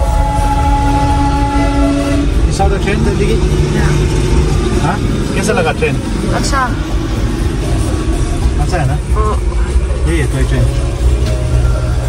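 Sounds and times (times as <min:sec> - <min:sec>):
engine and road rumble: 0:00.0 - 0:12.0
voices: 0:02.2 - 0:11.9.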